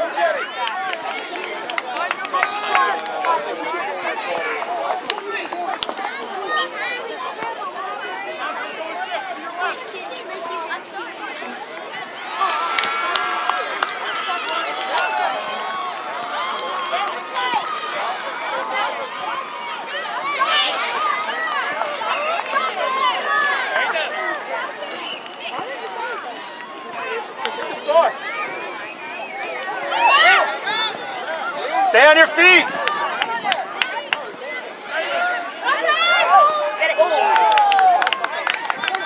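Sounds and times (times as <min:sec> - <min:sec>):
crowd chatter outdoors: 0:00.0 - 0:39.0.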